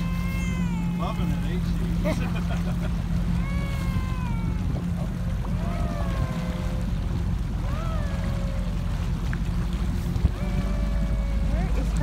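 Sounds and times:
motorboat engine running: 0.0s - 12.0s
voices calling out long cries: 0.0s - 12.0s
water noise: 0.0s - 12.0s
wind: 0.0s - 12.0s.

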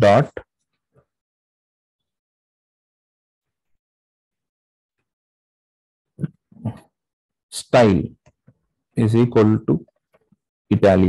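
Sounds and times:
man speaking: 0.0s - 0.4s, 9.0s - 9.8s, 10.7s - 11.0s.

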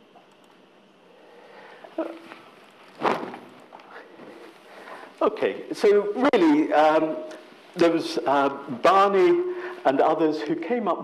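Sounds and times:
rustling thump: 2.9s - 3.6s.

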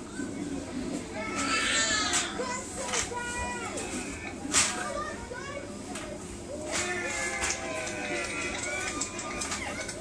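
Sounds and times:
children shouting: 1.1s - 5.8s, 6.4s - 10.0s.

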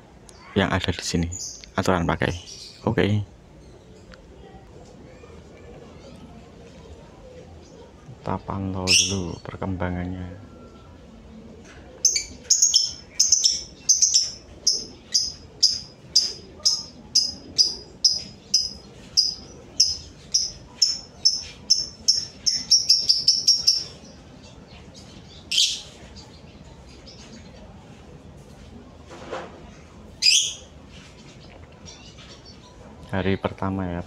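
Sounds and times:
lovebird chirping: 8.8s - 9.5s, 12.0s - 27.5s, 30.2s - 30.7s.

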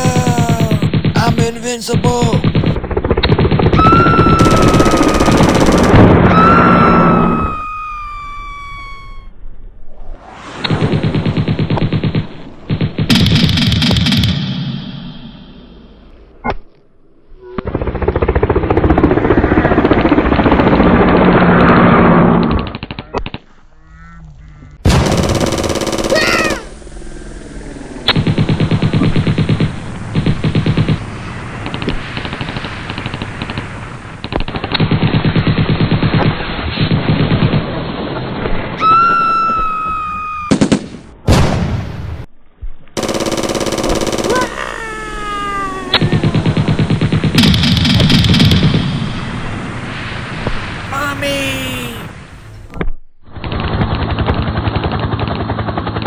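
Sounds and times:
machine-gun fire: 0.0s - 7.2s, 10.7s - 14.8s, 24.8s - 26.7s, 28.1s - 38.2s, 40.5s - 41.8s, 43.0s - 44.8s, 46.0s - 49.9s, 53.4s - 56.0s
gunshots: 0.0s - 7.4s, 10.3s - 15.2s, 24.8s - 26.7s, 28.1s - 38.8s, 40.5s - 42.2s, 43.0s - 44.9s, 46.0s - 52.5s, 53.4s - 56.0s
whistling tones falling in pitch: 3.8s - 5.6s, 6.2s - 9.4s, 38.8s - 40.5s.

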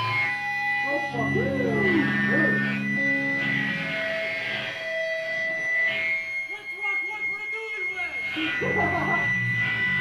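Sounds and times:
high ringing feedback tone: 0.0s - 10.0s
lower ringing feedback tone: 0.0s - 10.0s
faint guitar: 0.8s - 6.4s.

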